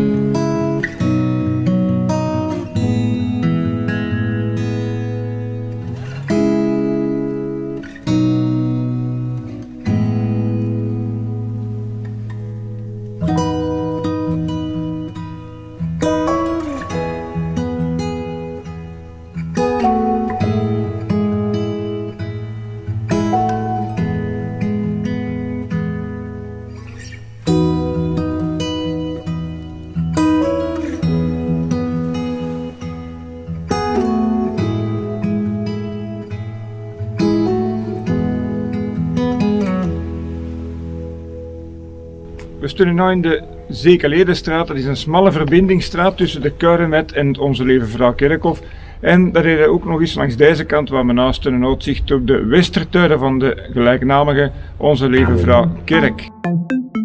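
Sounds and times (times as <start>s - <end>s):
acoustic guitar picking chords: 0.0s - 50.2s, 55.1s - 57.0s.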